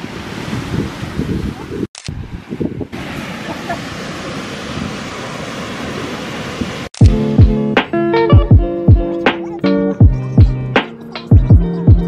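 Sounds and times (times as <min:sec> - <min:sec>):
wind buffeting microphone: 0:00.0 - 0:03.7
ocean surf on sandy beach: 0:00.0 - 0:07.0.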